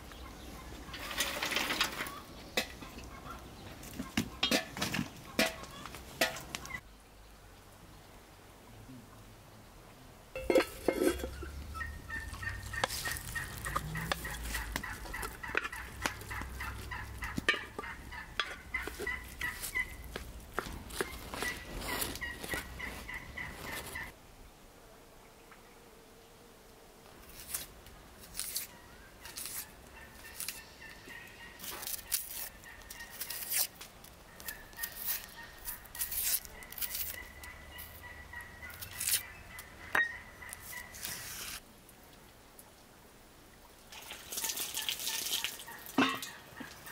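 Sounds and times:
domestic fowl calling: 10.8s - 20.1s, 21.0s - 24.2s, 28.7s - 33.6s, 34.3s - 41.5s.

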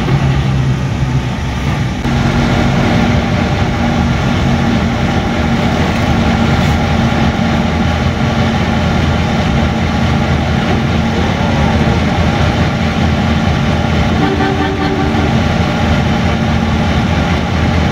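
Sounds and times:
truck engine drone from cab: 0.0s - 17.9s.

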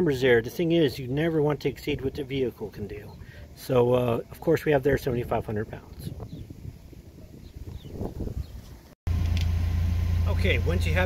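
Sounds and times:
truck engine idling: 9.1s - 11.0s.

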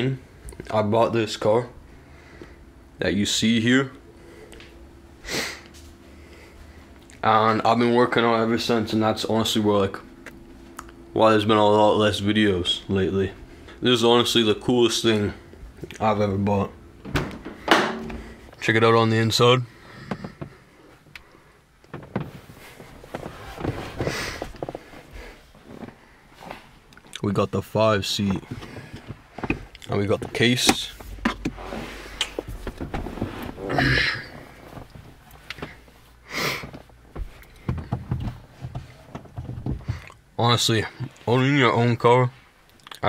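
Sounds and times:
faint steady hum: 0.0s - 43.0s.

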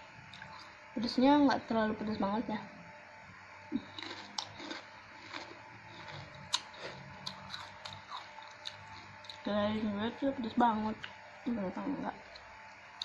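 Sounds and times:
chewing salad: 0.2s - 0.8s, 3.7s - 11.2s, 12.2s - 13.0s.

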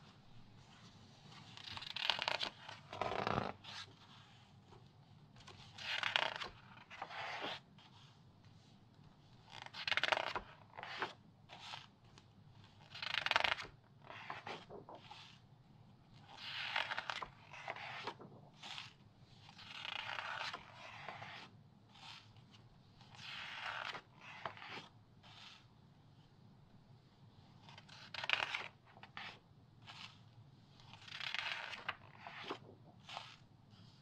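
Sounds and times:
magazine pages turning: 1.2s - 3.9s, 5.4s - 8.1s, 9.5s - 15.4s, 16.2s - 21.5s, 27.6s - 30.2s, 30.9s - 33.4s.

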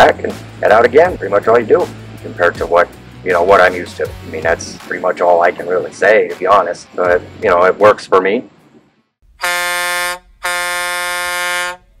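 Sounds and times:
truck air horn blasts: 9.3s - 12.0s.

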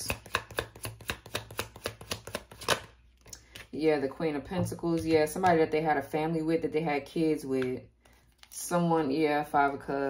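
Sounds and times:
cards being shuffled: 0.3s - 3.7s.

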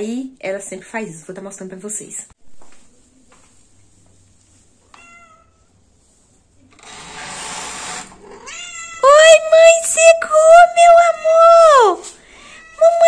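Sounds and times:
cat meowing: 4.9s - 5.7s, 8.2s - 9.1s.

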